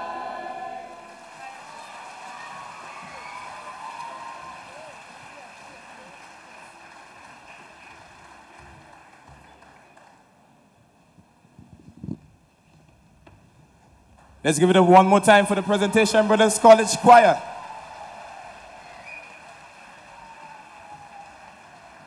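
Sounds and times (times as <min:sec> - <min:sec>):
audience applause: 0:00.0 - 0:10.4, 0:15.3 - 0:22.0.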